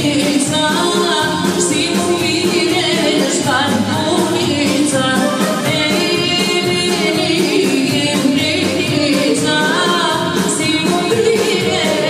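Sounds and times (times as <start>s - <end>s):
folk dance music with singer: 0.0s - 12.0s.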